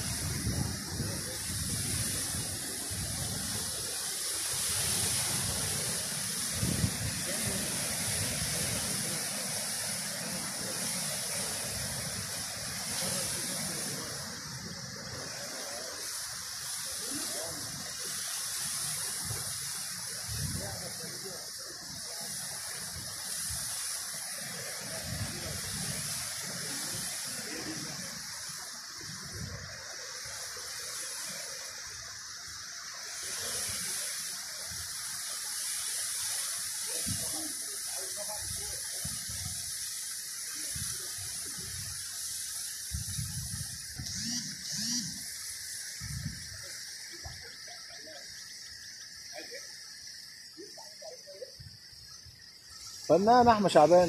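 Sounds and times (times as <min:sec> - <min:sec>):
insects chirping: 0:00.0 - 0:54.0.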